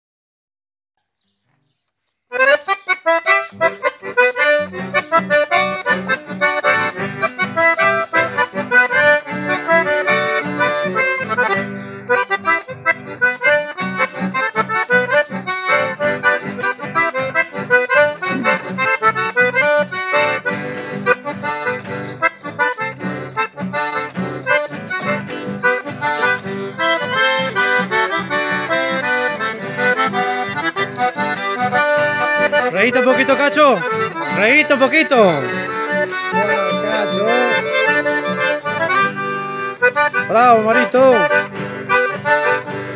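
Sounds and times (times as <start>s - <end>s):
accordion melody: 1.2s - 42.9s
acoustic guitar accompaniment: 1.2s - 42.9s.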